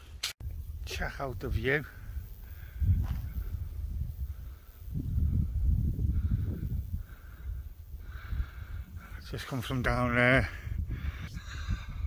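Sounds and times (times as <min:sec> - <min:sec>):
wind buffeting microphone: 0:00.4 - 0:12.0
person breathing hard: 0:04.3 - 0:09.2, 0:10.5 - 0:12.0.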